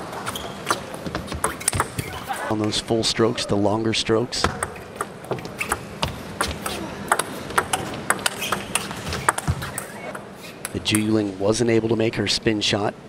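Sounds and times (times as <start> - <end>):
ping pong ball clicking off rackets: 1.4 - 2.1, 4.6 - 11.1.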